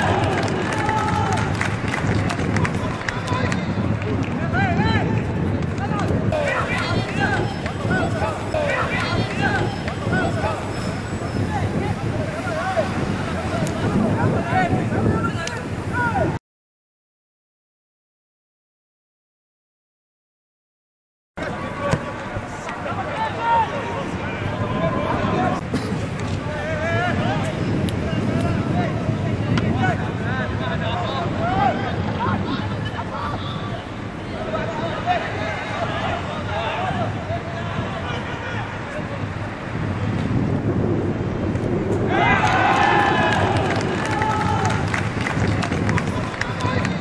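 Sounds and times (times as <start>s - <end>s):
stadium crowd voices: 0.0s - 16.4s, 21.4s - 47.0s
players shouting calls: 5.8s - 16.4s, 21.4s - 25.6s, 33.3s - 38.9s, 42.1s - 44.9s.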